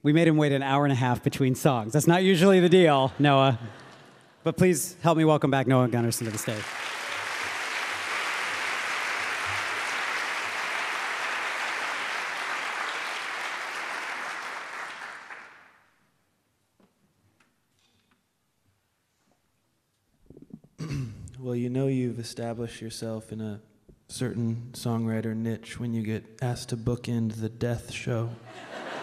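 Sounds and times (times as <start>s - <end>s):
audience applauding: 5.9s - 15.9s.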